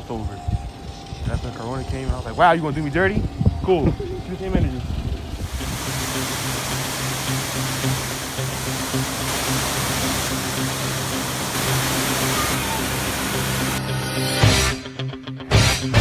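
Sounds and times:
waterfall rushing: 5.4 - 14.3
music: 6.9 - 16.0.

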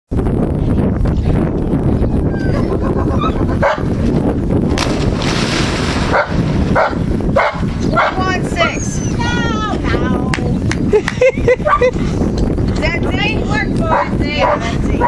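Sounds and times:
wind rumble on microphone: 0.1 - 15.0
dog barking: 3.6 - 3.9, 6.1 - 8.2, 11.6 - 11.9, 13.9 - 14.6
dog splashing into pool water: 4.8 - 6.5.

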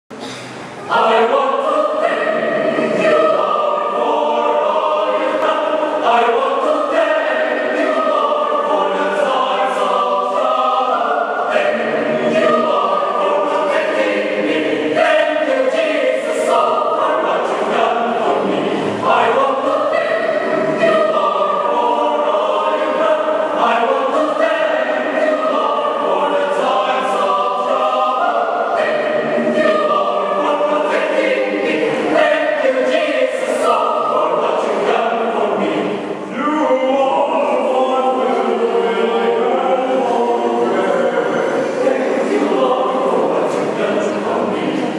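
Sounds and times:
mixed choir singing a cappella: 0.2 - 44.9.

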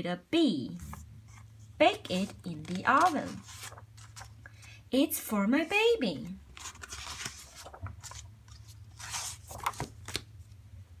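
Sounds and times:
book pages and cover rustling: 0.8 - 4.4, 6.5 - 10.3.

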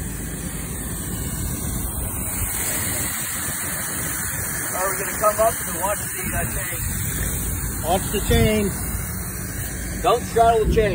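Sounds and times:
hose jet spraying water: 0.0 - 10.9.

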